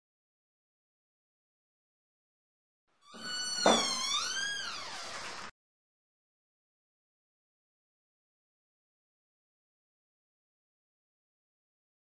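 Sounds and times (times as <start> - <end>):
high squeaking tone: 3.1 - 5.5.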